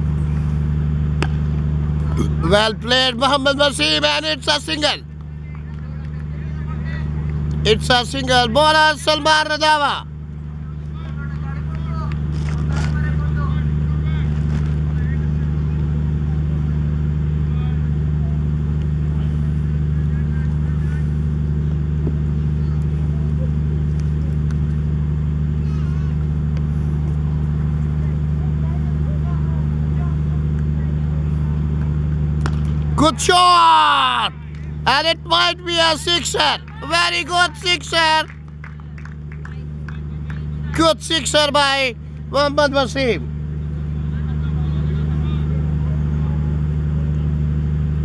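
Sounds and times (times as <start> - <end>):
low machine hum: 0.0 - 48.0.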